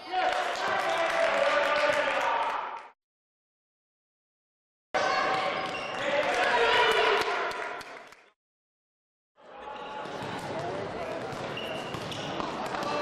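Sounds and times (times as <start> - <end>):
crowd and player voices: 5.0 - 7.7, 9.4 - 13.0.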